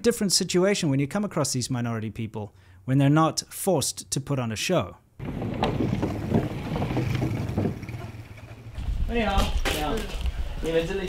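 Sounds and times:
knocks on wooden bridge: 5.2 - 8.7
wind on microphone: 5.2 - 9.6.

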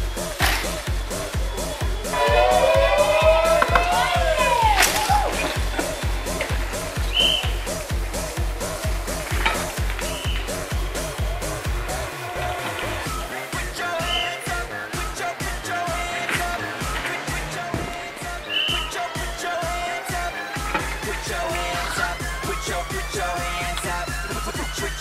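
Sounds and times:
driving kick-drum beat: 0.0 - 25.0
electronic dance music: 0.0 - 25.0.

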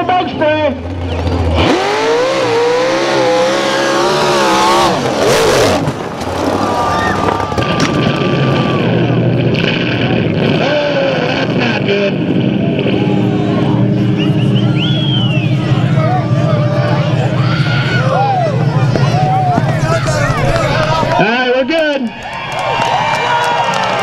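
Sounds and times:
truck engine revving hard: 0.8 - 24.0.

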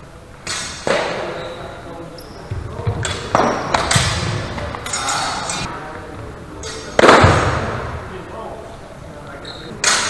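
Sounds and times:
steel swords clashing: 4.8 - 5.7.

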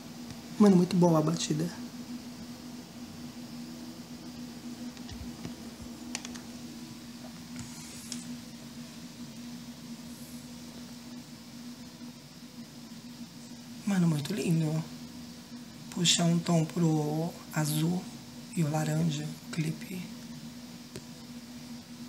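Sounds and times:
steady low hum: 0.0 - 22.0
phone being handled: 4.9 - 6.5.

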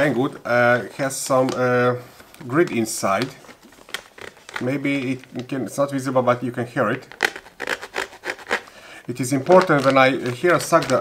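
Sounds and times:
plastic bag rasping scrapes: 7.0 - 11.0.

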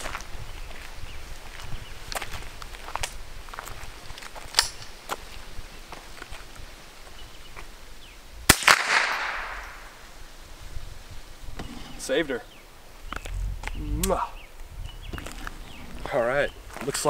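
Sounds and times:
rifle shot with echo: 8.5 - 10.0.

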